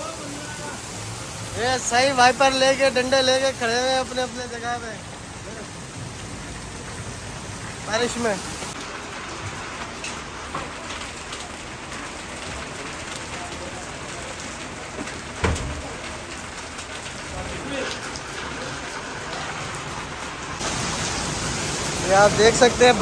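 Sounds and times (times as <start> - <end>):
heavy rain on wet paving: 0.0 - 23.0.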